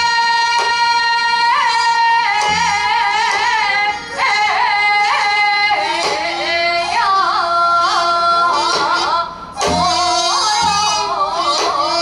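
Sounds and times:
woman singing long high note: 0.0s - 12.0s
low drum stroke: 2.4s - 3.6s.

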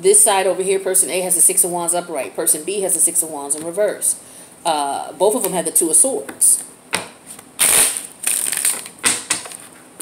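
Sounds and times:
cards being shuffled: 7.3s - 9.8s.

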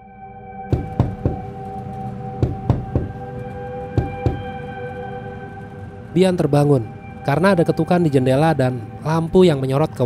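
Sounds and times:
ambient music drone: 0.0s - 10.0s
knocking on car window: 0.7s - 1.5s, 2.4s - 3.2s, 4.0s - 4.5s.

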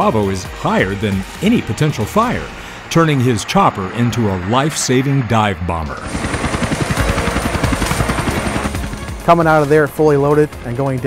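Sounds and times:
helicopter rotor chop: 0.0s - 11.0s.

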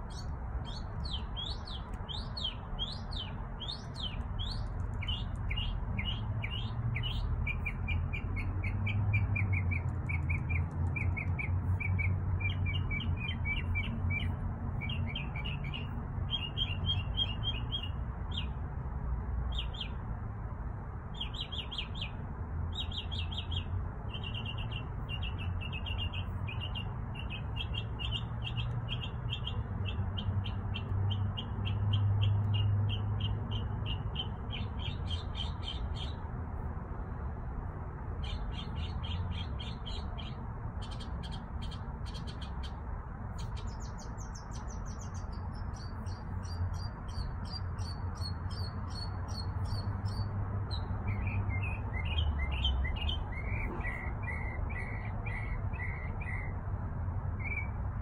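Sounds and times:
birds chirping: 0.0s - 18.6s, 21.2s - 36.3s, 38.2s - 56.5s.

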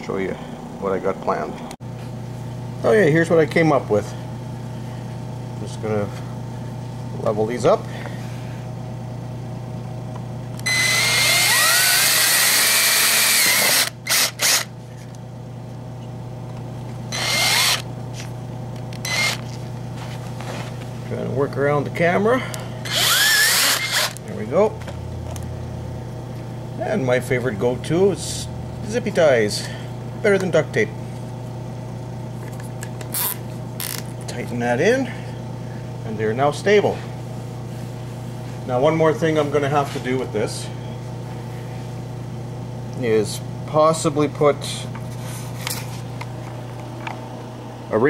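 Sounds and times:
steady low hum: 0.0s - 48.0s
power drill boring into plastic: 10.6s - 14.7s, 17.1s - 17.9s, 19.0s - 19.4s, 22.8s - 24.2s.

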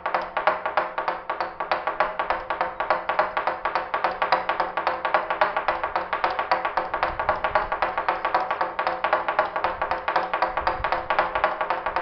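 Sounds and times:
mallet knocking wooden beam: 0.0s - 12.0s.

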